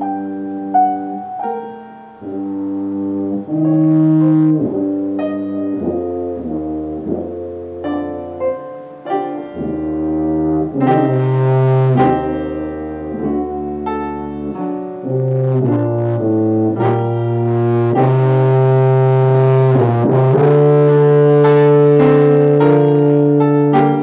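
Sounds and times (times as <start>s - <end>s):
piano accompaniment: 0.0s - 24.0s
tuba playing slow melody: 0.0s - 24.0s.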